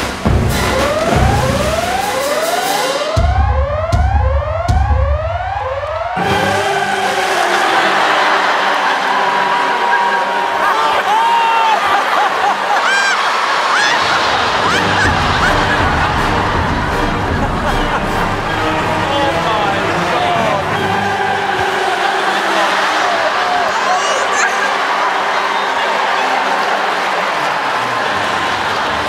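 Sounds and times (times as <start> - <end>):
studio audience cheering: 0.0 - 3.3, 5.4 - 29.0
heavy bass pulses: 0.0 - 8.2, 14.1 - 22.0
siren-like rising music sweeps: 0.0 - 10.7, 13.9 - 23.4.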